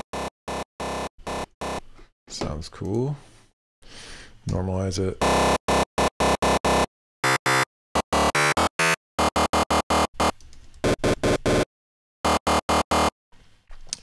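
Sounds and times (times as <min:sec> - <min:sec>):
distorted synth lead notes: 0:05.2 - 0:11.6, 0:12.2 - 0:13.1.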